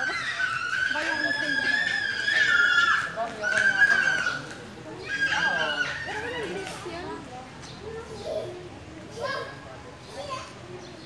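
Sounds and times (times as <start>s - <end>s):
high-pitched held cries: 0.0s - 3.1s.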